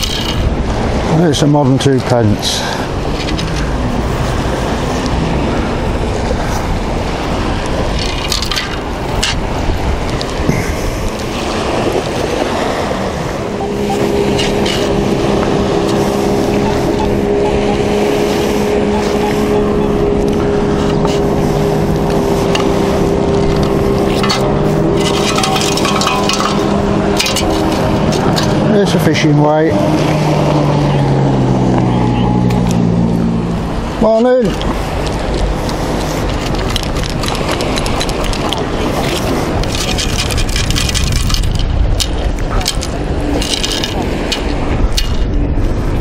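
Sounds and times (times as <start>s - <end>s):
wind rumbling on microphone: 0.0s - 46.0s
light clicks and rattles: 34.5s - 45.2s.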